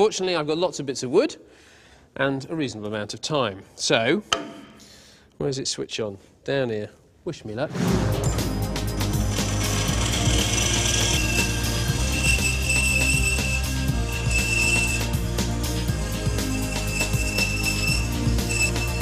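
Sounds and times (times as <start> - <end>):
background music: 7.7 - 19.0
bandsaw cutting wood: 9.2 - 15.1.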